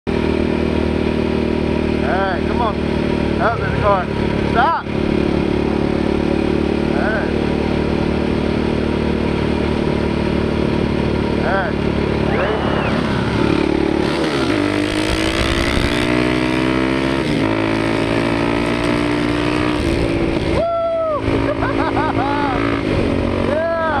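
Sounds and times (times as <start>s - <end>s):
dirt bike engine revving: 0.1s - 20.6s, 21.2s - 24.0s
road noise: 0.1s - 24.0s
wind noise: 14.8s - 16.2s.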